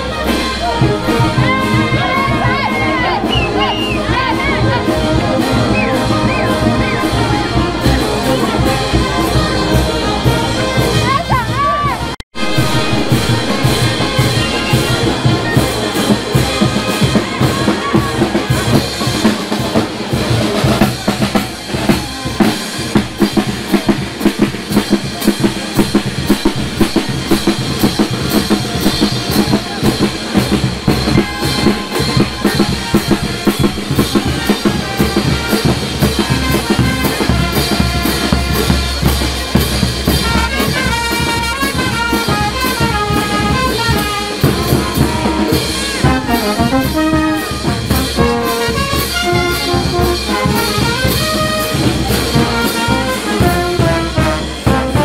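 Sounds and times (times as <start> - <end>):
brass melody: 0.0 - 55.0
snare drum: 0.0 - 55.0
bass drum: 0.6 - 55.0.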